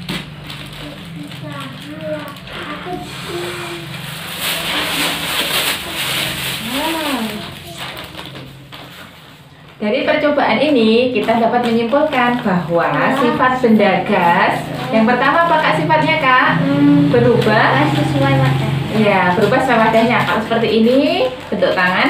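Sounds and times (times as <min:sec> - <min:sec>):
plastic crinkling: 0:00.0 - 0:09.8, 0:10.6 - 0:16.2
faint children's voices: 0:00.7 - 0:08.5
breath inflating plastic: 0:02.6 - 0:07.3.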